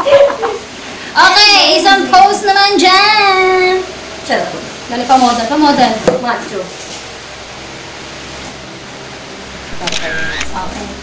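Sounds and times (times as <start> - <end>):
high-pitched woman's voice: 1.2 - 6.7.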